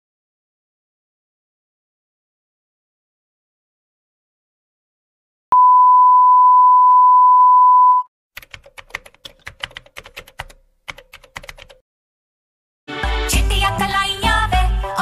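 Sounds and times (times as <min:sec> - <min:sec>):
steady electronic beep: 0:05.5 - 0:08.1
keyboard typing clicks: 0:08.4 - 0:11.8.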